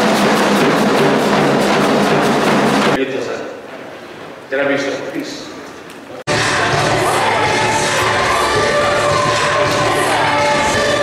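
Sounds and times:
marching side drum beat: 0.0 - 3.0.

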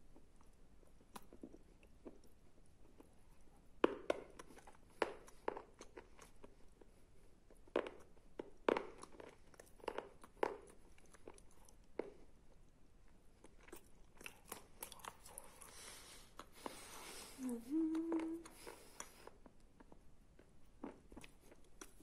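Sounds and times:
chewing clay paste: 0.0 - 22.0.

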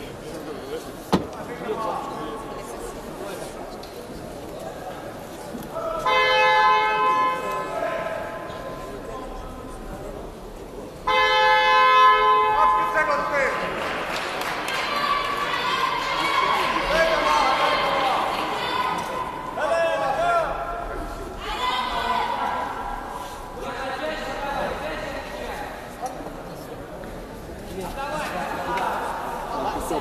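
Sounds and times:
spectators' voices and shouts: 0.0 - 30.0.

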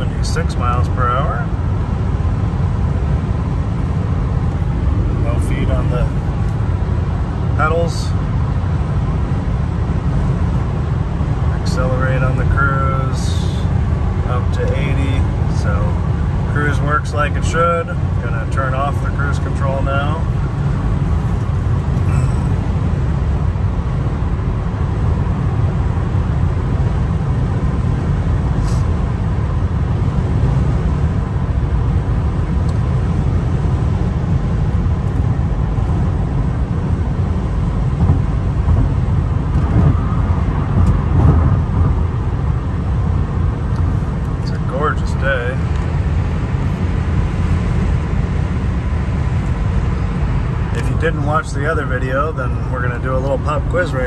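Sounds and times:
tyre and engine rumble in car: 0.0 - 54.0
wind noise: 20.2 - 51.2.

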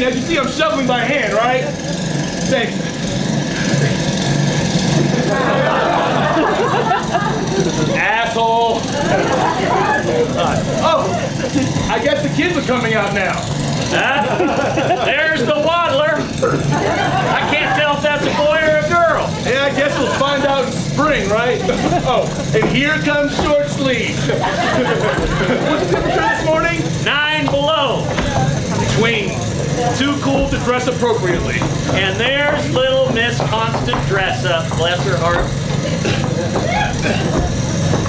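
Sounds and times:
faint voices: 0.0 - 38.0
low engine drone: 0.0 - 38.0.

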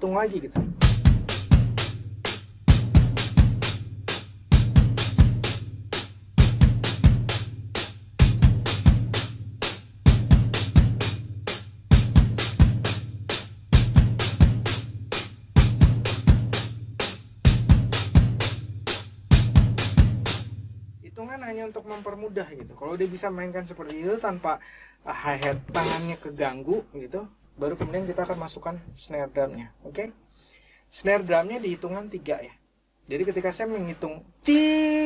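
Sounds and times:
bass drum kicks: 0.5 - 5.8, 6.4 - 20.6
closed hi-hat strokes: 0.8 - 24.6, 25.7 - 26.6, 28.1 - 28.8, 30.9 - 34.7.

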